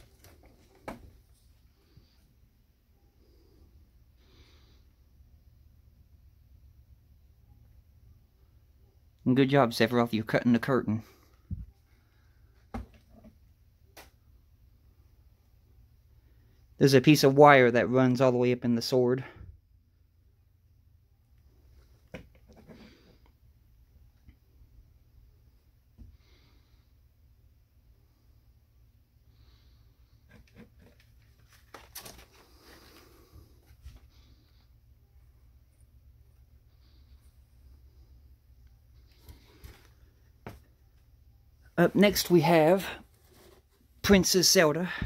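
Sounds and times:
faint low hum: 0.0 - 9.4
handling rustles and clicks: 30.3 - 32.6.

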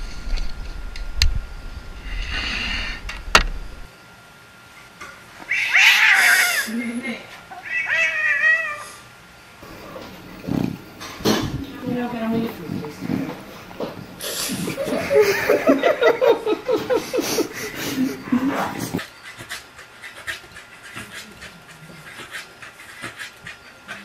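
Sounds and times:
wind rumble on microphone: 0.0 - 3.9
cat meowing: 5.5 - 6.7, 7.6 - 9.0.

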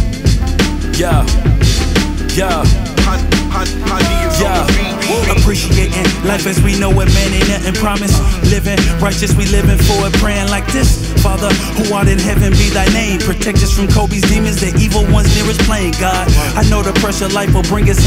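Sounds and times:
rapping over a heavy bass beat: 0.0 - 18.0.

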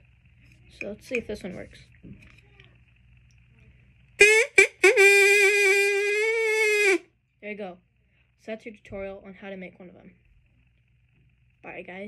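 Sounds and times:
straw whistle note: 4.2 - 7.1.

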